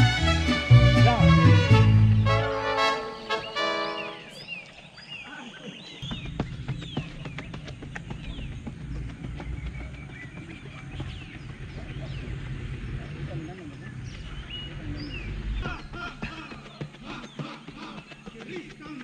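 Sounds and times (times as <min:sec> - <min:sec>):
latin music chords: 0:00.0 - 0:04.4
birds chirping: 0:00.0 - 0:19.0
steady low rumble: 0:06.0 - 0:18.8.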